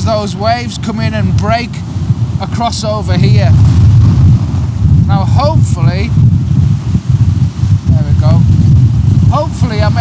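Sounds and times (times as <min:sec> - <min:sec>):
surf breaking on rocks: 0:00.0 - 0:10.0
wind buffeting microphone: 0:00.0 - 0:10.0.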